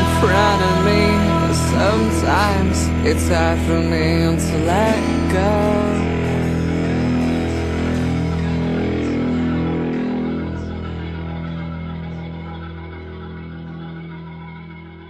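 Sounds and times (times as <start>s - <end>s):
held chords ringing: 0.0s - 15.0s.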